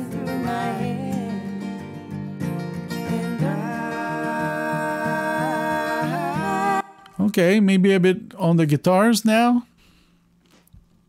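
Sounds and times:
person singing: 0.0s - 1.6s, 2.9s - 7.3s
acoustic guitar: 0.0s - 7.7s.

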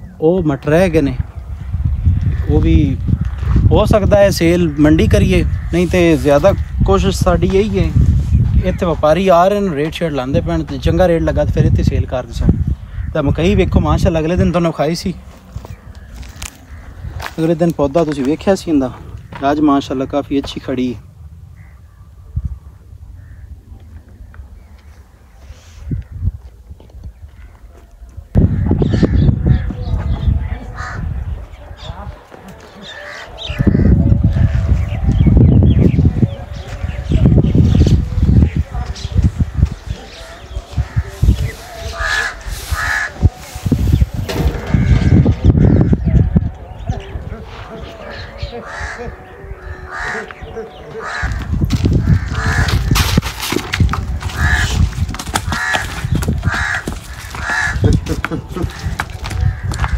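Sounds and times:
wind rumble on microphone: 0.0s - 14.6s, 15.2s - 19.5s, 20.8s - 59.9s
crow cawing: 16.0s - 17.4s, 30.8s - 31.2s, 32.8s - 34.6s, 41.9s - 43.2s, 48.4s - 53.1s, 54.3s - 54.8s, 55.4s - 58.1s
bird calling: 39.0s - 53.2s, 54.2s - 59.9s.

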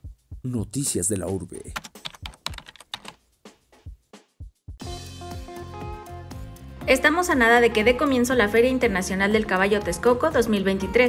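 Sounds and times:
keyboard typing clicks: 1.7s - 3.2s.

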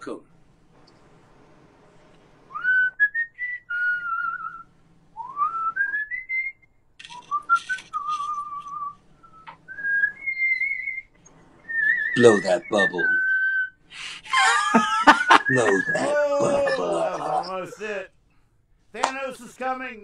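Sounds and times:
person whistling a tune: 2.5s - 4.6s, 5.2s - 11.1s, 11.7s - 13.8s
breathy hiss: 13.9s - 14.3s.

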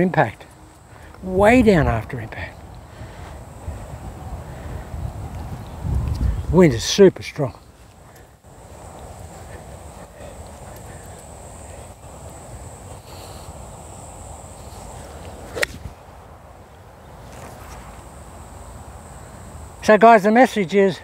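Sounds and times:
wind buffeting microphone: 1.2s - 6.9s, 8.6s - 16.3s
golf club striking ball: 15.5s - 15.9s.

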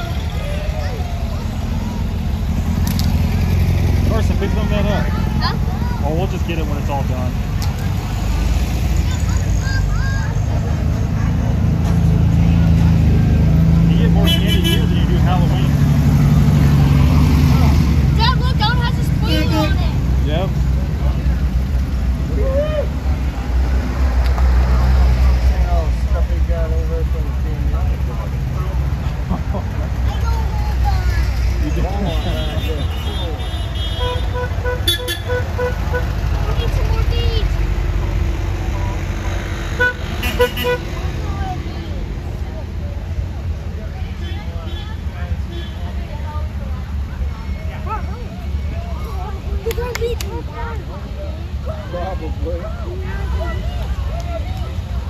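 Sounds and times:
engine rumble of passing cars: 0.0s - 55.0s
car horn toots: 32.0s - 36.2s, 39.8s - 40.9s.

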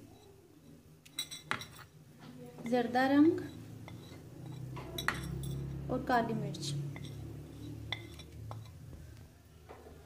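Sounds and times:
glass bowls clinking: 1.1s - 2.0s, 3.4s - 5.8s, 6.9s - 8.8s.

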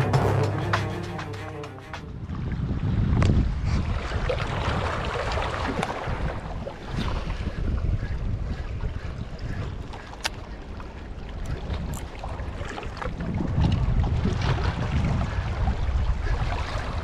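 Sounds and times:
wind buffeting microphone: 2.1s - 17.0s
sea water lapping at rocks: 3.4s - 7.7s, 8.5s - 17.0s.

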